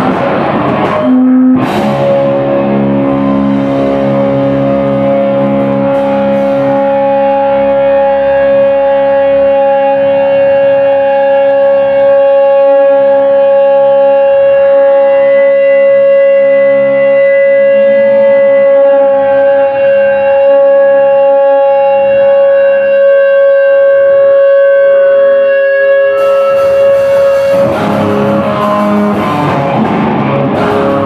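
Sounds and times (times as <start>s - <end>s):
band with drums and cymbals: 0.0s - 19.8s, 26.1s - 31.0s
guitar amplifier feedback tone: 0.0s - 31.0s
quiet guitar notes: 26.1s - 31.0s.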